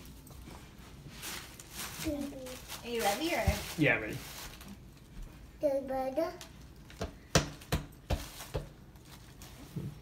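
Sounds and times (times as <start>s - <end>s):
footsteps on tile floor: 7.0s - 8.8s.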